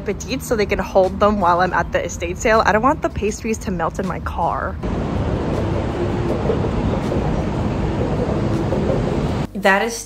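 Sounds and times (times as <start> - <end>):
elevated train rumbling: 0.0 - 9.5.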